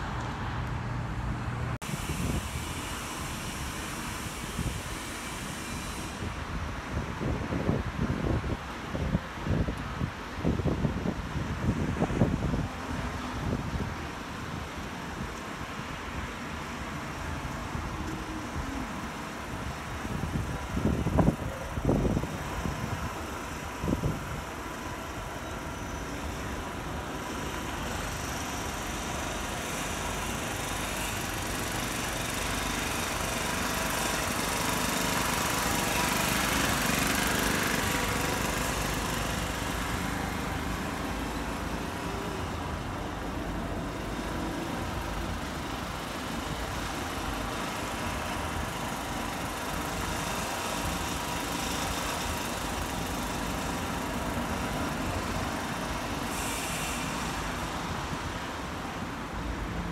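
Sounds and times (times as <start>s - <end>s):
road traffic noise: 0.0s - 59.9s.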